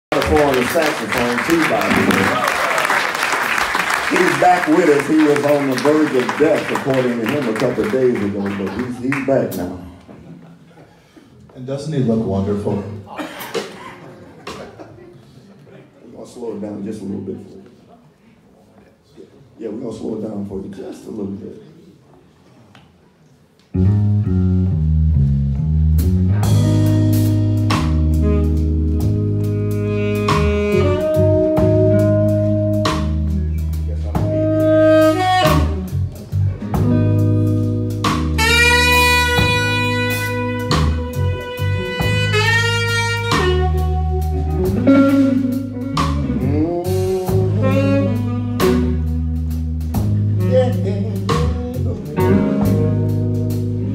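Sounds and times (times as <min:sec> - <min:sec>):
bass: 0:00.0 - 0:10.0, 0:23.7 - 0:53.9
drums: 0:00.1 - 0:10.6, 0:13.2 - 0:15.0, 0:23.8 - 0:53.9
electric guitar: 0:23.8 - 0:53.9
saxophone melody: 0:23.8 - 0:53.9.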